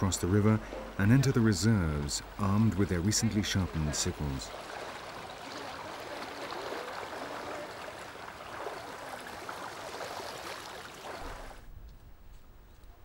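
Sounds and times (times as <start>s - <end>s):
people wading through water: 0.0s - 11.7s.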